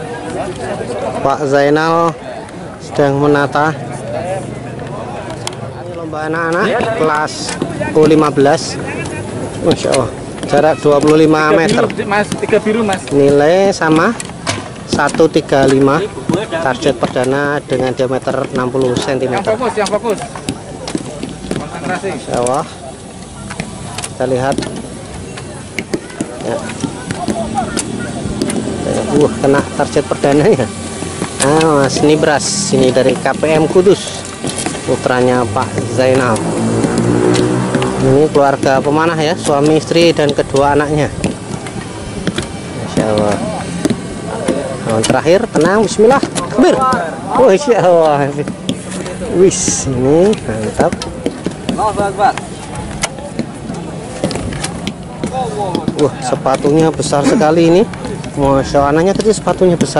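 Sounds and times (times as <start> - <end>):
people chattering: 0.0 - 59.9
people talking: 0.0 - 59.9.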